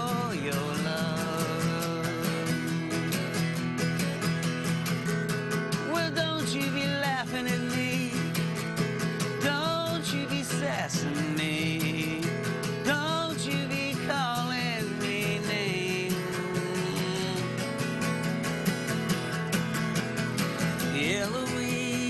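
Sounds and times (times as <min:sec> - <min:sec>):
man singing: 0:00.0 - 0:03.7, 0:05.7 - 0:18.3, 0:20.6 - 0:22.0
acoustic guitar strumming: 0:00.0 - 0:22.0.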